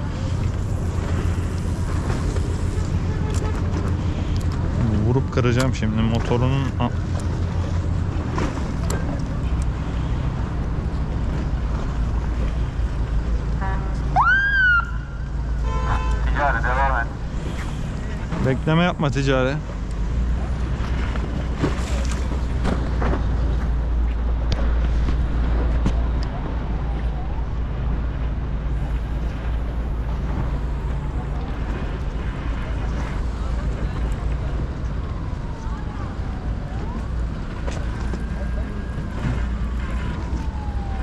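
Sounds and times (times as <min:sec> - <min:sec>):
motorboat engine drone: 0:19.9 - 0:41.0.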